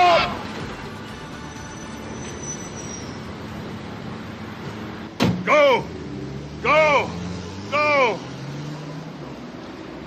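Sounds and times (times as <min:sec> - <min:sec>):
person's drawn-out voice: 0:06.6 - 0:08.3.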